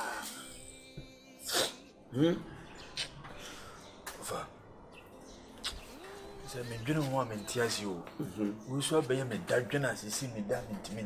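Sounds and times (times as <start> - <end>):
faint background music: 0.0 - 11.0
sneeze-like breath burst: 1.4 - 1.9.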